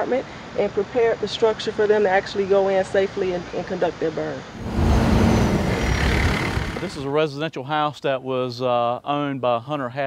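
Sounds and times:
faint high whine: 0:04.5 - 0:07.2
fire engine driving past: 0:04.6 - 0:07.0.

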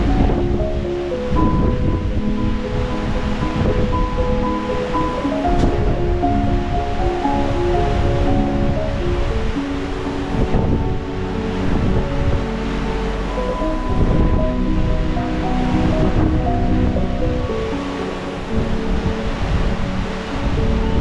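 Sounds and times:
slow melody of held notes: 0:00.0 - 0:21.0
water noise: 0:00.0 - 0:21.0
wind rushing: 0:00.0 - 0:21.0.

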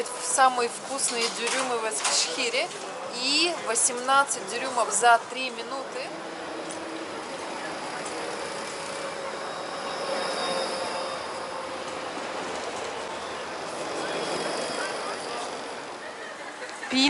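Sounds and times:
tram wheels rushing on rail: 0:00.0 - 0:16.9.

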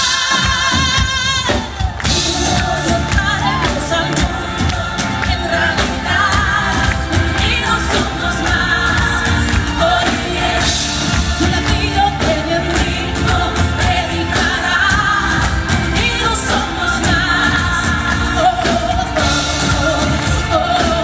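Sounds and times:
bass guitar: 0:00.0 - 0:21.0
drums: 0:00.0 - 0:21.0
keyboards: 0:00.0 - 0:21.0
woman singing lead: 0:00.0 - 0:21.0.

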